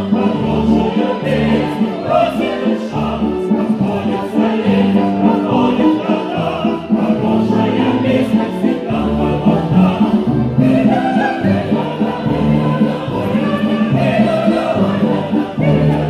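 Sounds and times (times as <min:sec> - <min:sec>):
choir singing: 0:00.0 - 0:16.0
musical accompaniment: 0:00.0 - 0:16.0.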